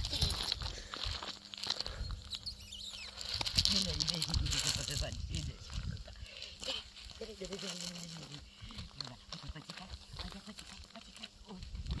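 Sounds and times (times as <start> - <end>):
gravel crunching: 0.0 - 2.4.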